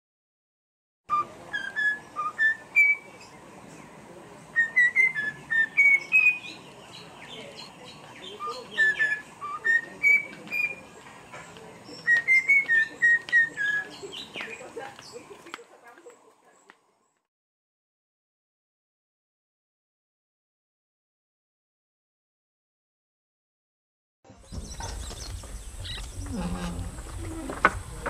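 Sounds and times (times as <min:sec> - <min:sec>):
cockatiel whistling: 0:04.6 - 0:06.4.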